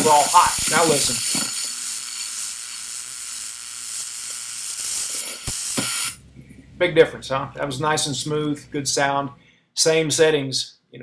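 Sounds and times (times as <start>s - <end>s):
welding arc hissing: 0.0s - 6.3s.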